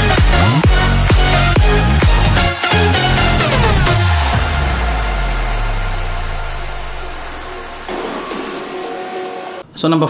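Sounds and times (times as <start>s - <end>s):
electronic dance music: 0.0s - 9.6s.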